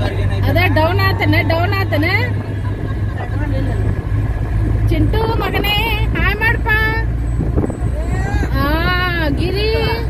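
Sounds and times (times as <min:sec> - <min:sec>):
van engine and road noise: 0:00.0 - 0:10.0.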